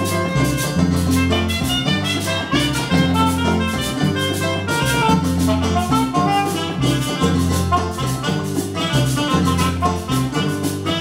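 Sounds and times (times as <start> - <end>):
latin dance band playing: 0.0 - 11.0
saxophone melody: 0.0 - 11.0.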